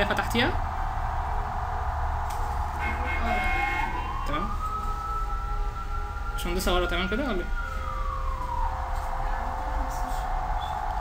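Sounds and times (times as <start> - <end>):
high whining tone rising: 0.0 - 11.0
low steady hum: 0.0 - 11.0.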